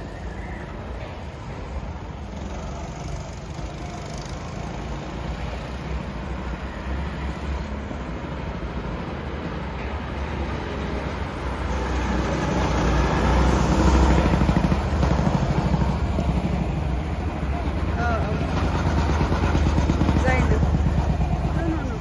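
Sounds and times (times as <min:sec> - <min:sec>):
go-kart engines passing: 0:00.0 - 0:22.0.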